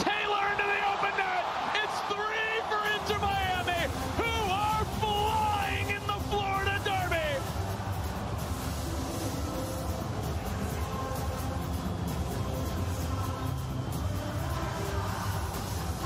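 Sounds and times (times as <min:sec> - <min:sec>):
stadium crowd noise: 0:00.0 - 0:16.0.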